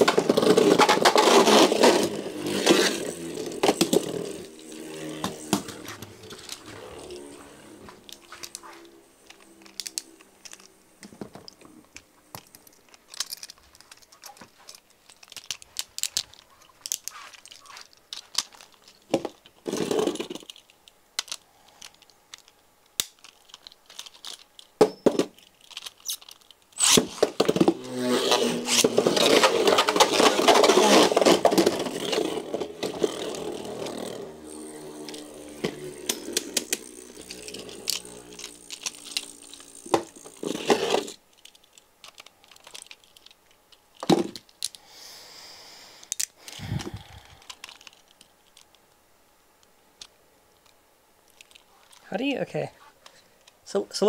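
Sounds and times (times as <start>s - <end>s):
spinning top whirring on plastic: 0.0s - 11.6s, 15.1s - 43.4s.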